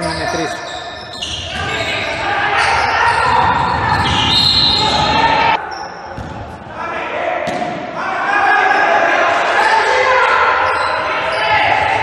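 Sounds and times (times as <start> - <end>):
loud voices of players and spectators: 0.0 - 12.0
basketball bouncing on wooden court: 3.1 - 4.4.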